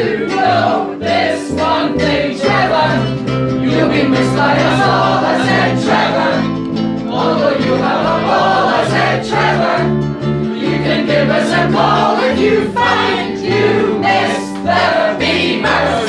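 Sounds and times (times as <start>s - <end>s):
choir singing: 0.0s - 16.0s
instrumental accompaniment: 0.0s - 16.0s.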